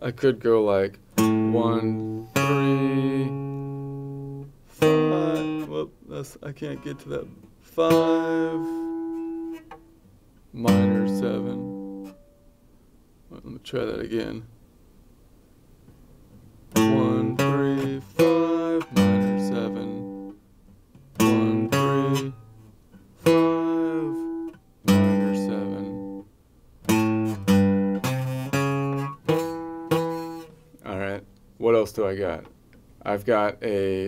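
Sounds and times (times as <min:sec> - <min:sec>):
acoustic guitar arpeggio: 0:01.2 - 0:05.9, 0:06.6 - 0:10.0, 0:10.6 - 0:12.3, 0:16.7 - 0:20.4, 0:21.0 - 0:30.7.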